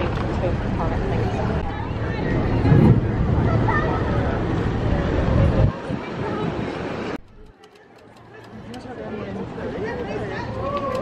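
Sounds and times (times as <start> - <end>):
faint voices: 0.0 - 11.0
people talking: 0.0 - 11.0.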